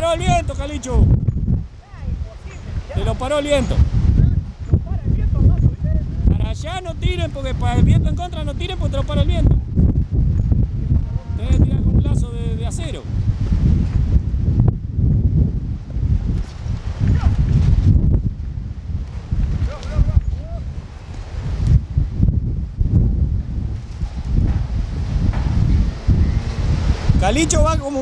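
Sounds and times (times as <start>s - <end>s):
gusty wind buffeting microphone: 0.0s - 28.0s.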